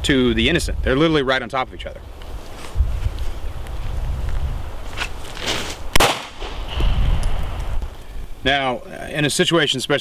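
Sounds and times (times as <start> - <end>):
gunshot: 6.0 - 7.0.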